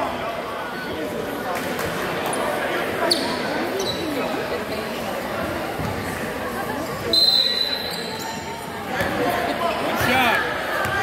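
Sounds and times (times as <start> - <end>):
voices of players and spectators: 0.0 - 11.0
sneakers squeaking: 3.0 - 6.2, 6.9 - 11.0.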